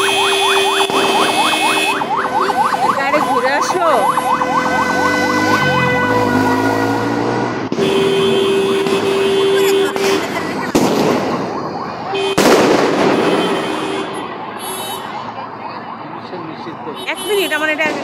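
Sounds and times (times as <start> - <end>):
fireworks bangs: 0.0 - 2.0, 7.6 - 14.1
emergency vehicle siren: 0.0 - 18.0.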